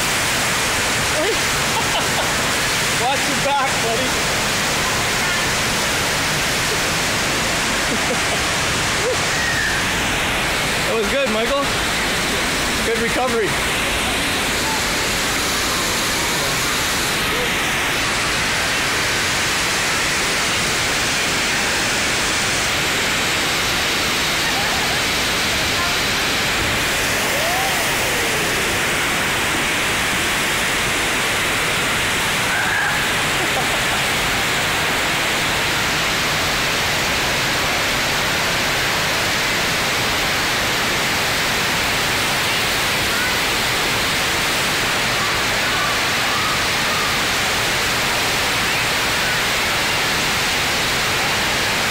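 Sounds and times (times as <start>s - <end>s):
water rushing up wave: 0.0s - 51.9s.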